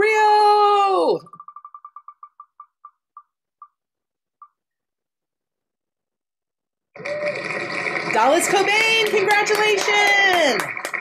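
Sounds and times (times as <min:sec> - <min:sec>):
spinning wheel ticking: 0:01.0 - 0:03.8.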